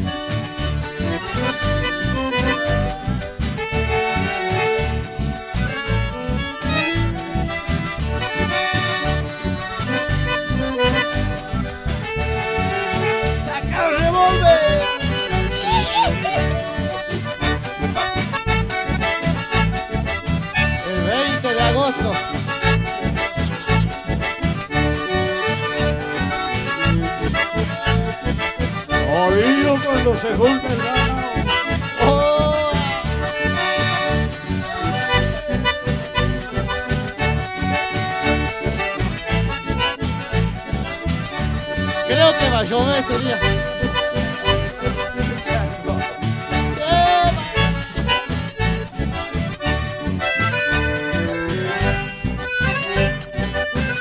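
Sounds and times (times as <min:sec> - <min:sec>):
steady bass beat: 0:00.0 - 0:53.9
accordion: 0:00.0 - 0:54.0
band playing dance music: 0:00.0 - 0:54.0.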